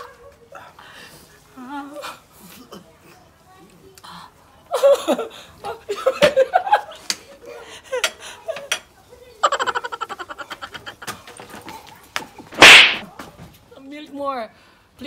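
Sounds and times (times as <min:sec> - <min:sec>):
people gasping: 0:00.5 - 0:02.7, 0:07.4 - 0:08.6
stuttering laughter: 0:09.4 - 0:11.4.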